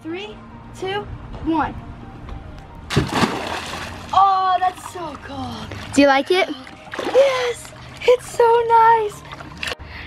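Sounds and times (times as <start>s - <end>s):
person splashing into pool: 2.9s - 4.2s.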